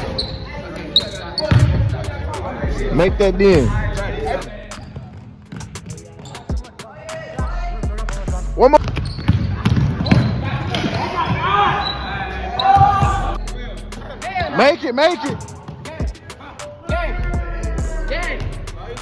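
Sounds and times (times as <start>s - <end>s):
players shouting: 10.2s - 13.4s.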